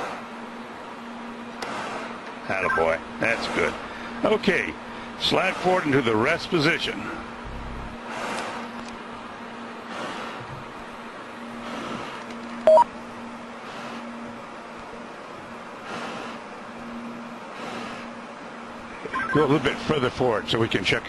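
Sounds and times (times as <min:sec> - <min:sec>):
two-tone electronic beep: 0:02.6 - 0:02.9, 0:12.7 - 0:12.9, 0:19.1 - 0:19.5.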